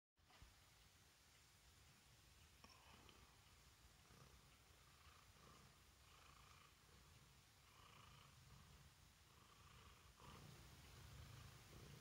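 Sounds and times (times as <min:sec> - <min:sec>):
cat purring: 0:00.2 - 0:12.0.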